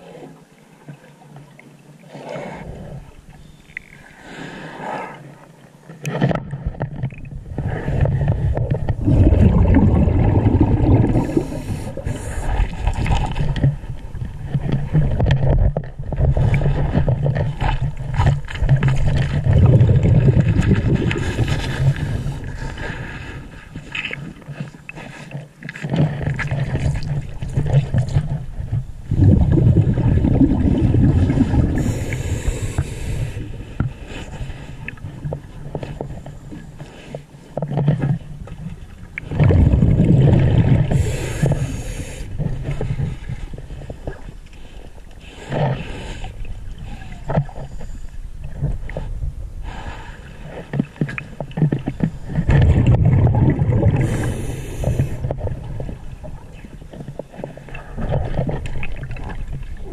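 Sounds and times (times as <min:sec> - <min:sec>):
exhaled bubbles rumbling underwater: 0:05.3 - 0:25.1, 0:25.7 - 0:59.9
regulator inhalation hisses: 0:31.8 - 0:33.4, 0:40.9 - 0:42.3, 0:54.0 - 0:55.2.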